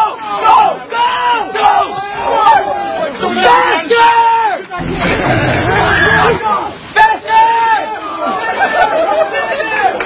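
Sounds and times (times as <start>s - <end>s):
people shouting over one another: 0.0s - 10.0s.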